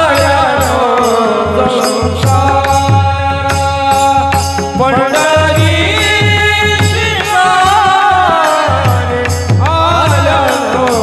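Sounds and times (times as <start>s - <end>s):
men singing devotional song: 0.0s - 11.0s
rhythmic percussion beat: 0.0s - 11.0s.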